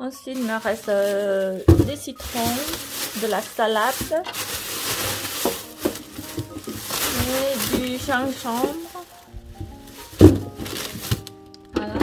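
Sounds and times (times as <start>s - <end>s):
background music: 0.0s - 12.0s
produce thumping in plastic drawer: 0.4s - 11.3s.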